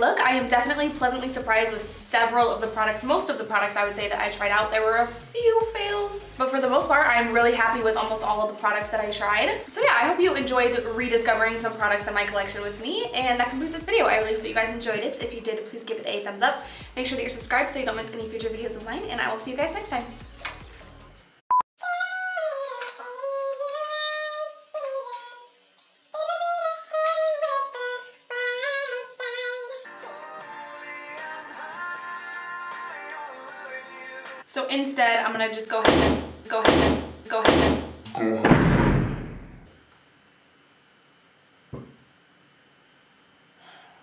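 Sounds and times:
door slamming: 35.9 - 39.7.

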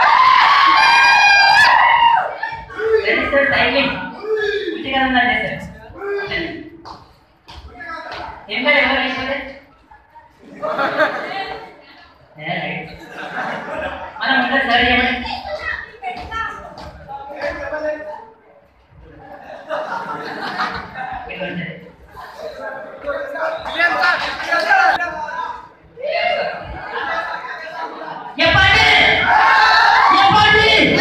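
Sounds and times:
crowd voices: 0.0 - 4.8, 5.4 - 31.0
man talking over loudspeakers: 2.8 - 6.7, 14.2 - 15.3, 28.4 - 29.3, 30.1 - 31.0.

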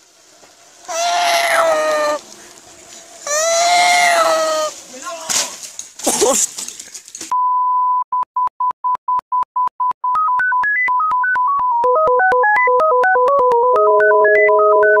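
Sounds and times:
electronic test tone beep: 7.4 - 15.0.

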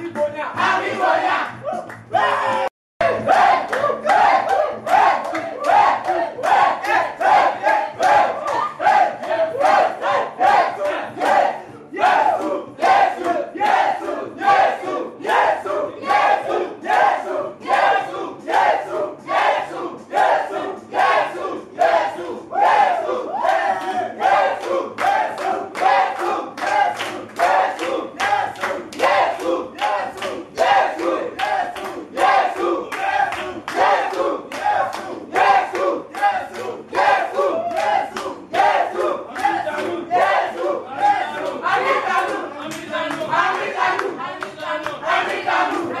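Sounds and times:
crowd chanting: 0.6 - 1.6, 2.2 - 46.0.

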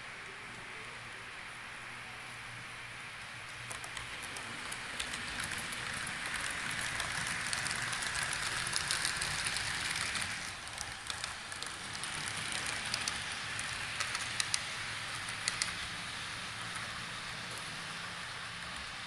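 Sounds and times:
model trains rumbling: 0.0 - 19.0
wheels clicking over rail joints: 3.5 - 19.0.

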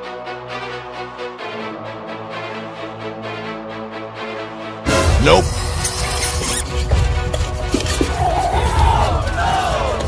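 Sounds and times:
group of voices yelling: 8.0 - 10.0.

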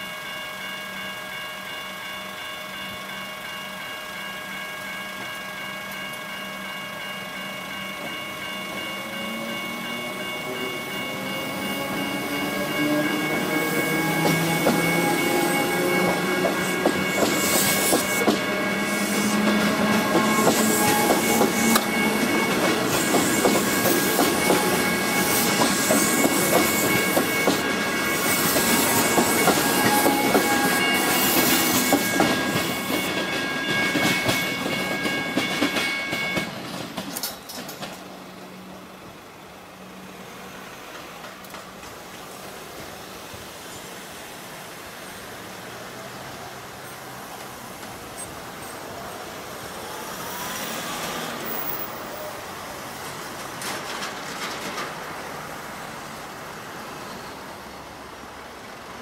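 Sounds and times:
crossing warning bells ringing: 0.0 - 59.0
train wheels clicking over rails: 8.0 - 38.2, 40.7 - 43.6, 52.7 - 56.2.

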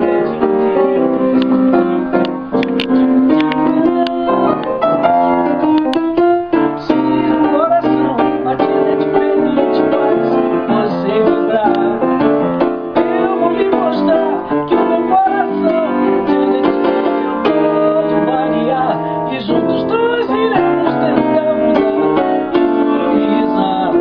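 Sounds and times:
piano playing chords: 0.0 - 24.0.

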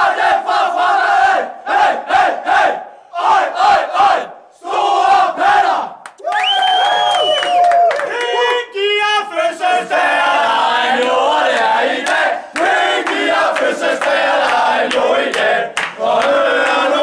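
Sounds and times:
men chanting together: 0.0 - 5.9, 9.3 - 17.0.

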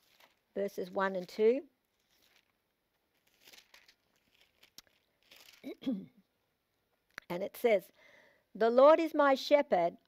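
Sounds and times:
thin pages rustling: 0.0 - 0.5, 1.1 - 5.7.

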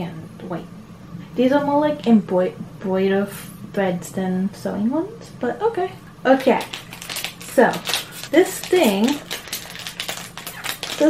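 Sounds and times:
small objects clicking and tapping: 6.4 - 11.0.

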